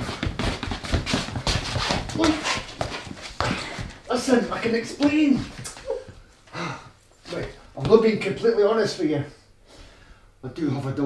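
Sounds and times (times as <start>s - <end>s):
woman crying: 5.8s - 6.2s
heavy ragged breathing: 6.5s - 7.0s.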